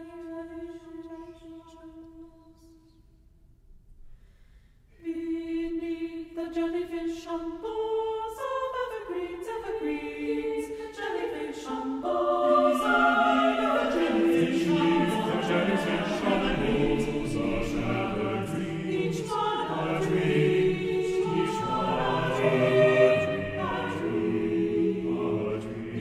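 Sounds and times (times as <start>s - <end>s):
choir singing sustained chords: 5.0s - 26.0s.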